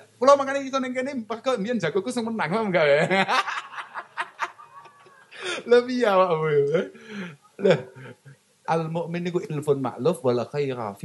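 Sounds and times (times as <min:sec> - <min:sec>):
man laughing into a microphone: 0:03.1 - 0:05.7.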